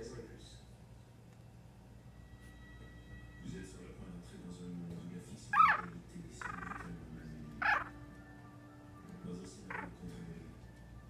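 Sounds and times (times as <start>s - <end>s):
puppy crying in high squeals: 5.6s - 5.9s, 7.6s - 7.9s.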